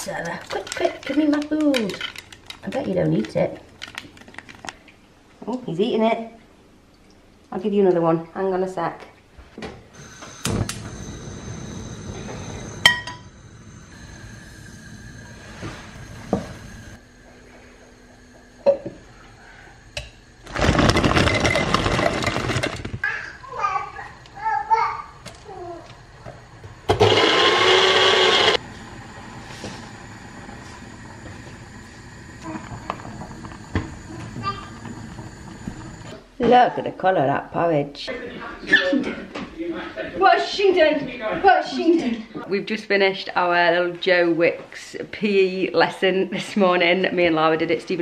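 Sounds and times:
electric blender running: 0:26.9 - 0:36.1.

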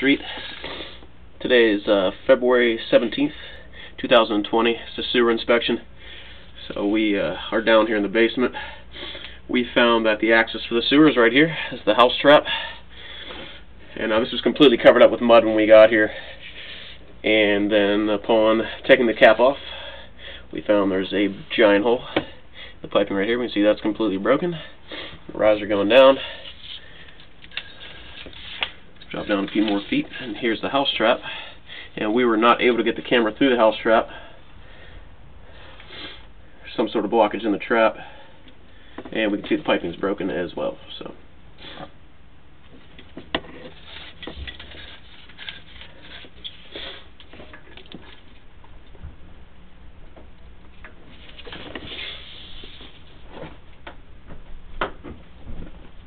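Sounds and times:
low hum: 0:47.2 - 0:56.0.

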